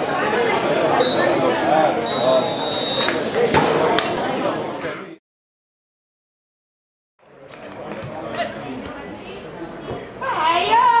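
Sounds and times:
voices of players and spectators: 0.0s - 5.2s, 7.2s - 11.0s
referee's whistle: 1.0s - 1.4s, 2.0s - 3.2s.

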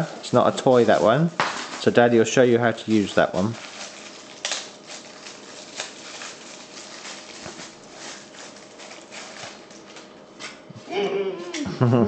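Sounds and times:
room hiss: 0.0s - 3.9s
short laugh: 10.9s - 12.0s.

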